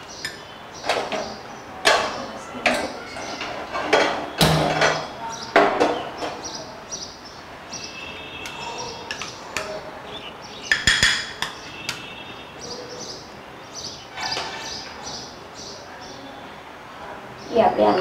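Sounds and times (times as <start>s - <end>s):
metal spoon clinking on glass bowls: 10.7s - 12.0s.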